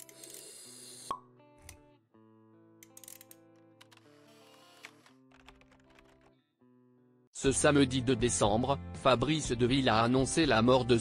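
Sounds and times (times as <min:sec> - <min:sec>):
sound-design music with held notes: 0:01.2 - 0:11.0.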